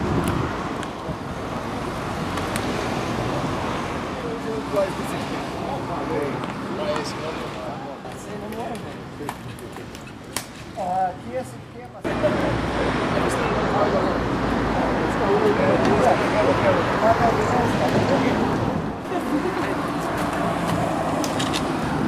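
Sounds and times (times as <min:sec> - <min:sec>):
people chattering outdoors: 0:00.0 - 0:22.0.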